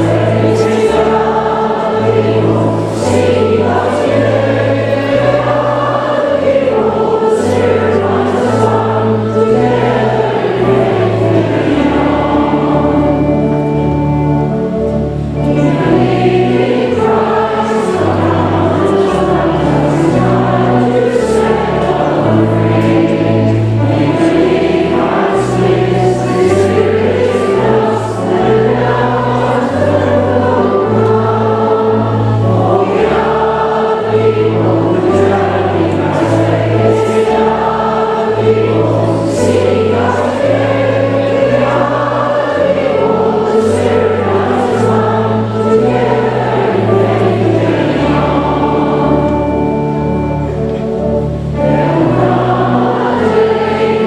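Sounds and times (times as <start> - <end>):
congregation singing: 0.0 - 54.0
instrumental accompaniment: 0.0 - 54.0.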